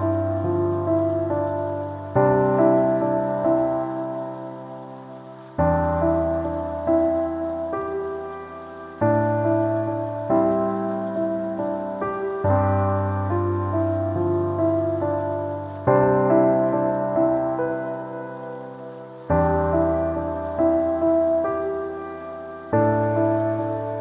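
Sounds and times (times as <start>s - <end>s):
rain hiss: 0.0s - 24.0s
solo piano music: 0.0s - 24.0s.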